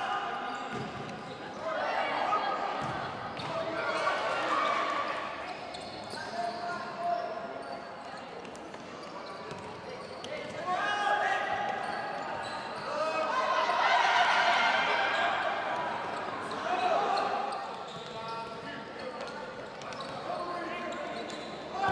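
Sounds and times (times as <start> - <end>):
players calling and shouting: 9.3 - 21.9.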